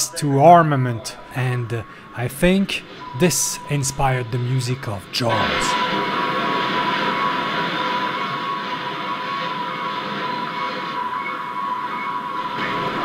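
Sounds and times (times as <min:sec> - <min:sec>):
high held tone: 0:00.0 - 0:13.0
steady rushing noise: 0:00.5 - 0:13.0.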